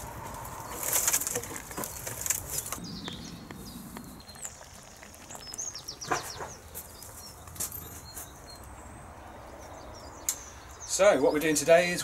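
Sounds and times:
small birds chirping: 0.1s - 12.0s.

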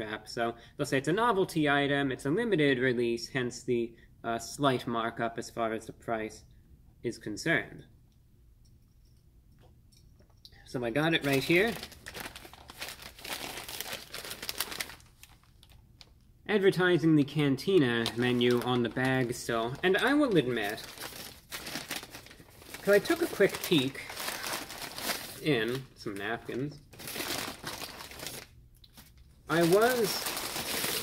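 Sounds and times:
paper bag crinkling: 11.2s - 16.1s, 17.8s - 31.0s.

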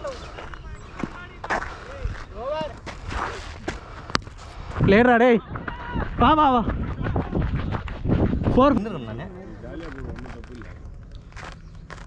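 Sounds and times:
wind rumble on microphone: 1.9s - 12.0s.

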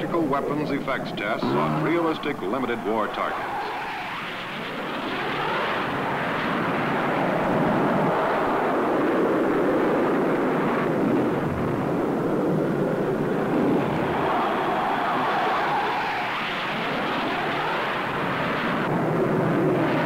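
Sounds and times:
jet fighter engine noise: 0.0s - 20.0s.

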